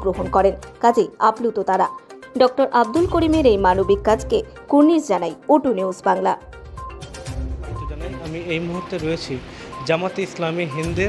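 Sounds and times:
background music with low bass: 0:00.0 - 0:05.8, 0:06.4 - 0:11.0.

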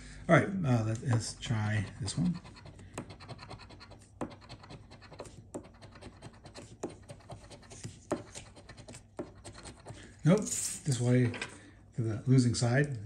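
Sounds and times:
coin scratching lottery ticket: 0:01.5 - 0:10.6.

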